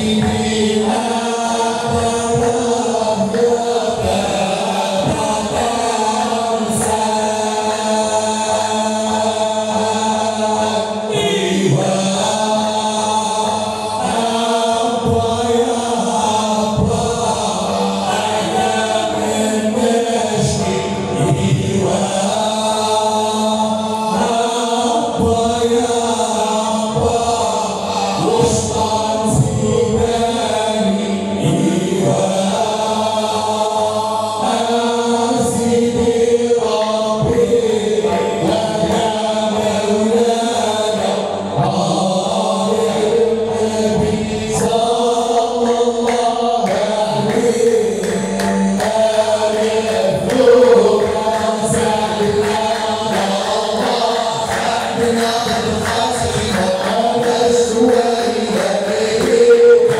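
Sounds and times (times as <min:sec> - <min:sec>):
men chanting in unison: 0:00.0 - 0:59.9.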